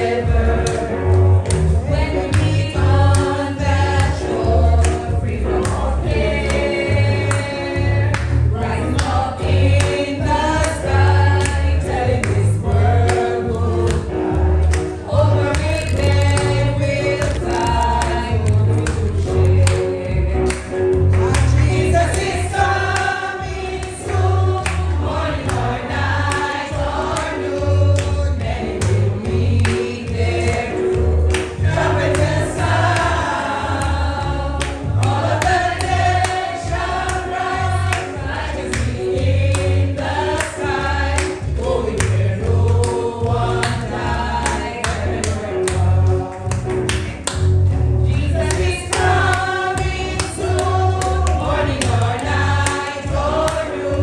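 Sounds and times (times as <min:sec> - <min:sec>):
choir singing gospel: 0:00.0 - 0:54.0.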